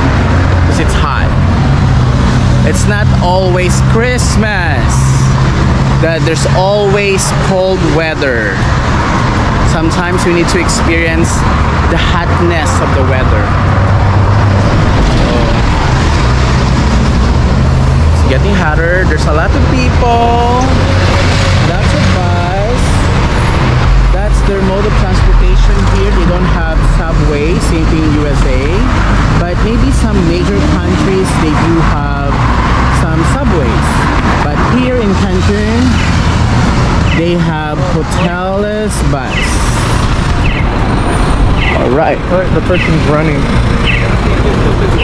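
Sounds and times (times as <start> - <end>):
large vehicle engine drone: 0.0 - 45.0
street traffic: 0.0 - 45.0
voices talking: 0.0 - 45.0.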